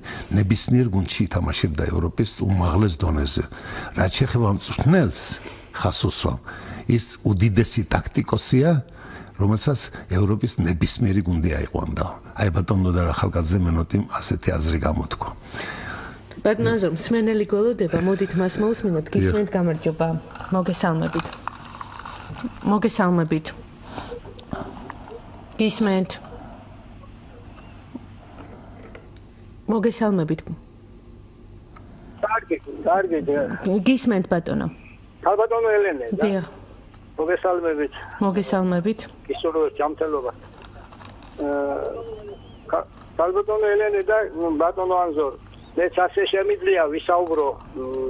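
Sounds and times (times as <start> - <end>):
man speaking: 19.2 - 19.4, 32.2 - 33.6, 41.4 - 48.0
person humming: 41.4 - 42.5.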